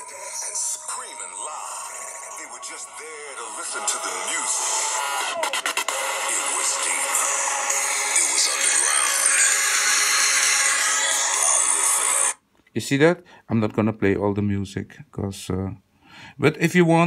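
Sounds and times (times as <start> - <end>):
trance music through small speaker: 0.0 - 12.4.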